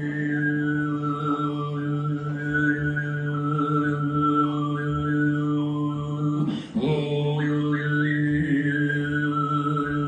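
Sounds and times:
overtone throat singing: 0:00.0 - 0:10.0.

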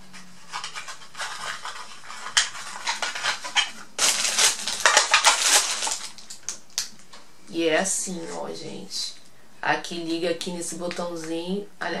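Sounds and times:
packaging crinkling: 0:00.4 - 0:07.1
packaging clicks and rustles: 0:00.5 - 0:07.0.

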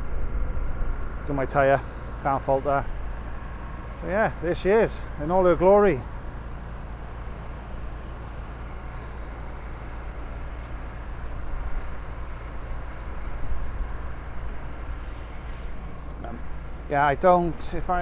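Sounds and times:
vehicle rumble: 0:00.0 - 0:18.0.

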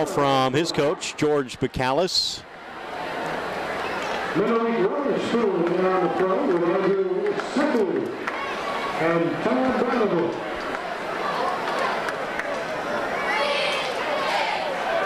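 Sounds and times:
crowd murmur: 0:02.4 - 0:15.0.

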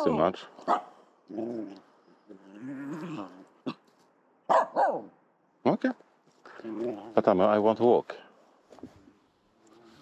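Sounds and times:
dog barking sharply: 0:00.6 - 0:00.9, 0:04.5 - 0:05.1.

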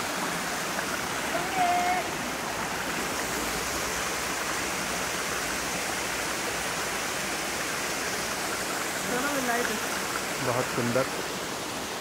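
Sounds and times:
stream pouring over boulders: 0:00.0 - 0:12.0
waterfall rushing: 0:00.0 - 0:12.0.

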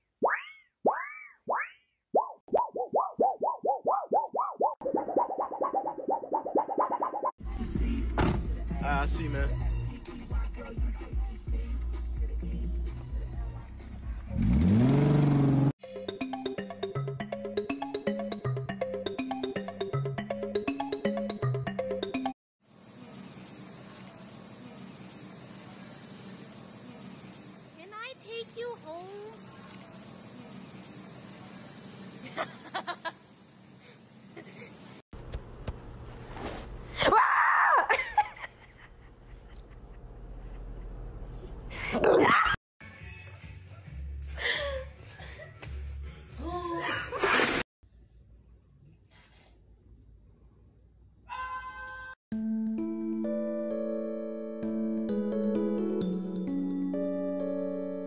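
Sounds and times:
background music: 0:07.4 - 0:14.6, 0:15.8 - 0:22.4, 0:52.4 - 0:58.0
car engine revving: 0:14.1 - 0:15.7.

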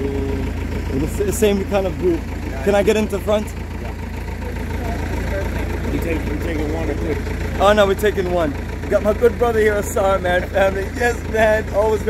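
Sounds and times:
people talking: 0:00.0 - 0:12.0
vehicle engine idling: 0:00.0 - 0:12.0.

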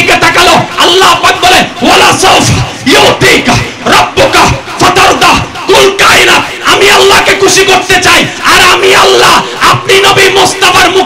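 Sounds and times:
man preaching over microphone: 0:00.0 - 0:11.0.

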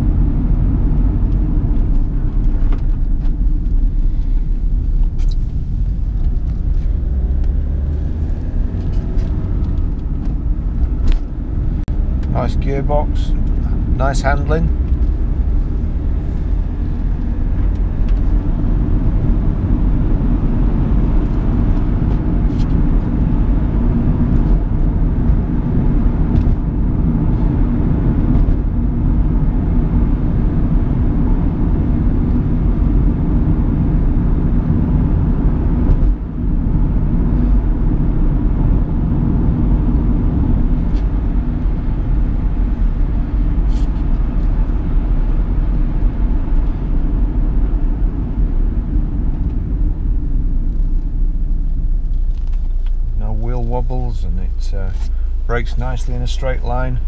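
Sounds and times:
in-cabin engine and road noise: 0:00.0 - 0:57.0.

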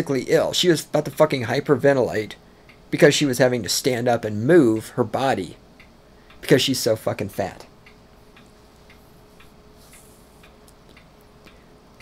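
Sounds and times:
faint regular ticking: 0:00.0 - 0:12.0
low steady hum: 0:00.0 - 0:12.0.

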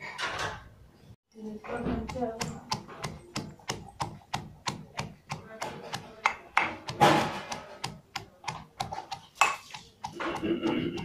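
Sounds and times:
pounder knocking on metal bowl: 0:01.7 - 0:11.0.

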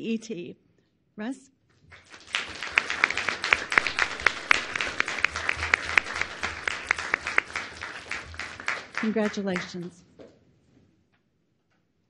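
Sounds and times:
audience applauding: 0:01.9 - 0:10.0
loud sharp individual claps: 0:01.9 - 0:10.0.

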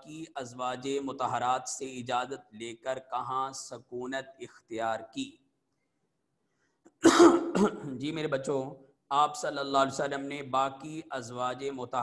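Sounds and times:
man speaking: 0:00.0 - 0:05.4, 0:07.2 - 0:12.0
man coughing: 0:07.0 - 0:08.0.

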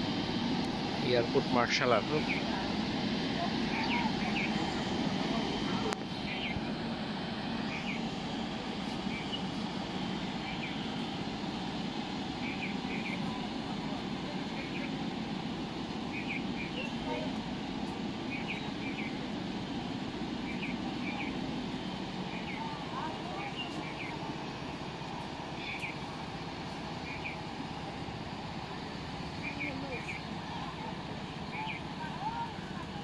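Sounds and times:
distant jet engines running: 0:00.0 - 0:33.0
murmur of voices: 0:00.4 - 0:18.8, 0:20.2 - 0:33.0.

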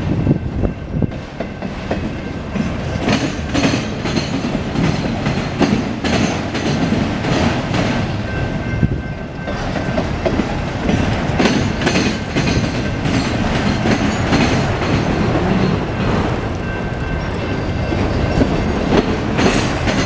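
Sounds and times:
freight train rumbling past: 0:00.0 - 0:20.0
wheels clicking over rail joints: 0:01.0 - 0:08.2, 0:09.2 - 0:20.0.

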